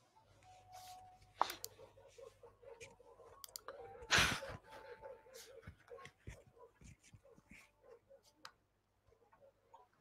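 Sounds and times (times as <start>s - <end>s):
soft clicks: 3.4s - 3.7s.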